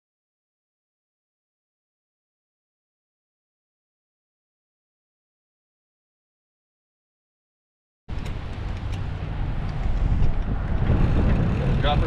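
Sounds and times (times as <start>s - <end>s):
bike tyre rumble on pavement: 8.1s - 12.0s
wind buffeting a microphone: 8.1s - 12.0s.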